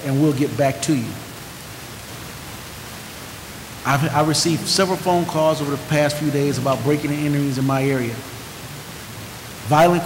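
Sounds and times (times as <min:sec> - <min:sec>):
steady microphone hiss: 0:00.0 - 0:10.0.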